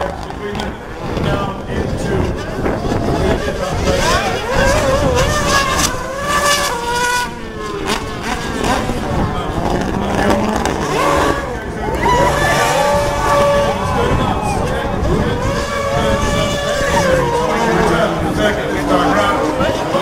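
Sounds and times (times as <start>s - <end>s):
racing car engines revving: 0.0s - 20.0s
tyre noise: 0.0s - 20.0s.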